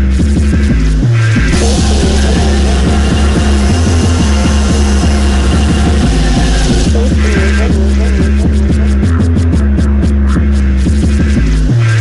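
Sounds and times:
deep bass line: 0:00.0 - 0:12.0.

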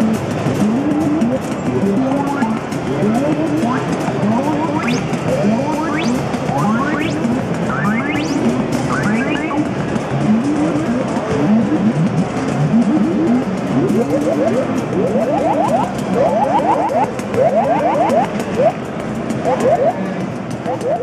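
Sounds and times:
synthesizer rising pitch sweeps: 0:00.0 - 0:18.8, 0:19.4 - 0:20.0, 0:20.6 - 0:21.0.

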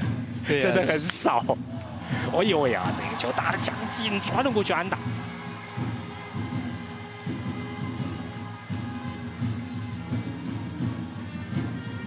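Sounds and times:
rhythmic cheering music: 0:00.0 - 0:12.0
stadium crowd noise: 0:00.0 - 0:12.0.

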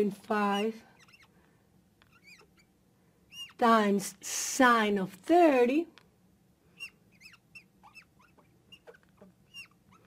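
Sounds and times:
marker squeaking on glass: 0:00.4 - 0:01.4, 0:02.0 - 0:03.6, 0:06.8 - 0:10.0.

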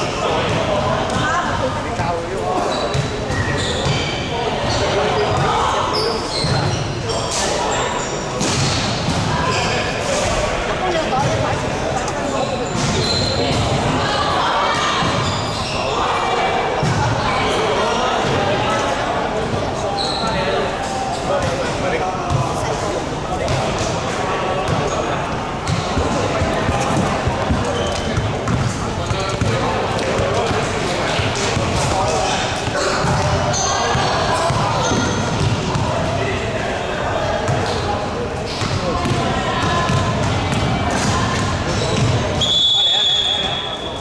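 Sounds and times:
people chattering: 0:00.0 - 0:44.0
basketballs bouncing on court: 0:02.9 - 0:05.6, 0:22.3 - 0:22.5, 0:23.5 - 0:23.8, 0:25.6 - 0:31.9, 0:32.6 - 0:36.2, 0:38.6 - 0:42.4.

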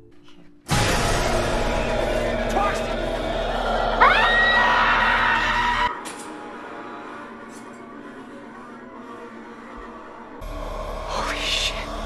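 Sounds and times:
horror film music: 0:00.0 - 0:12.0.

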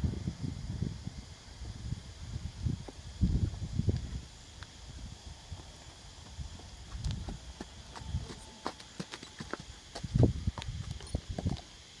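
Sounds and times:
horse hoofbeats on dirt: 0:05.6 - 0:11.7.

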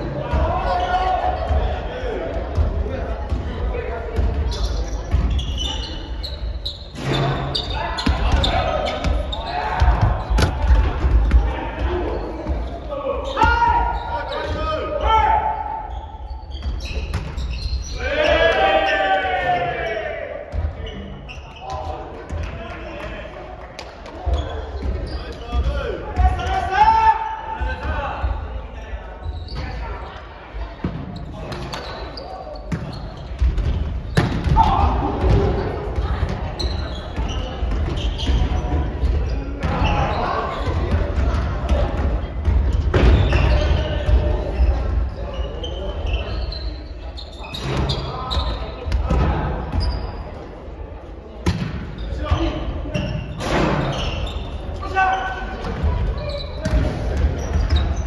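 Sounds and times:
players calling and shouting: 0:00.0 - 0:58.0
volleyball hits and bounces: 0:09.8 - 0:12.6, 0:32.7 - 0:36.6, 0:51.4 - 0:52.6.

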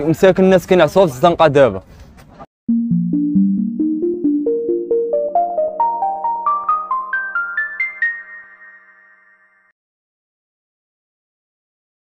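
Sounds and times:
synthesized jingle rising notes: 0:02.7 - 0:09.6.

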